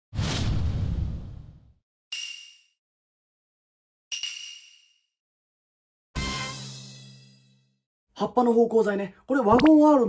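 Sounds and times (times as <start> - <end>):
whoosh and boom effect: 0.1 - 1.7.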